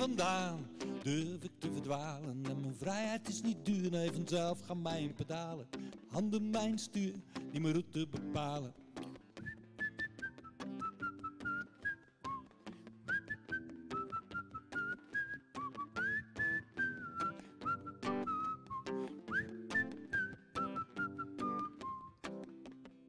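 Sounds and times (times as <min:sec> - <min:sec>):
acoustic guitar strumming: 0:00.0 - 0:23.0
man whistling a melody: 0:09.4 - 0:22.5.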